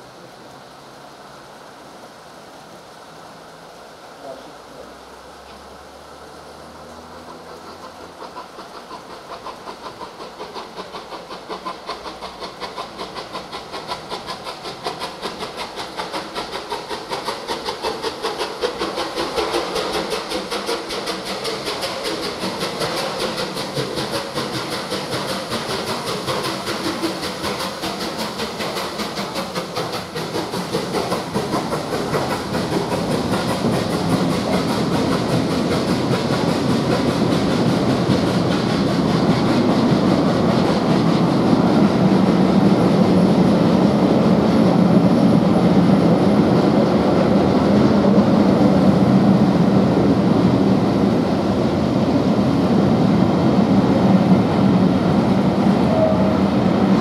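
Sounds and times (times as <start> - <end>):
coach wheels rumbling on rails: 0.0 - 57.0
steam hiss: 0.0 - 57.0
steam locomotive exhaust beat: 5.8 - 57.0.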